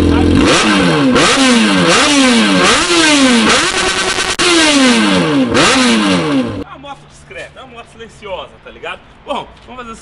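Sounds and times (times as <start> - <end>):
motorcycle engine revving: 0.0 - 6.7.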